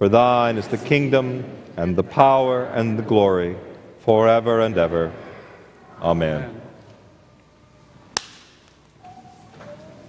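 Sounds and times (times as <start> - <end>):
wafer snapping crack: 8.1 - 9.0.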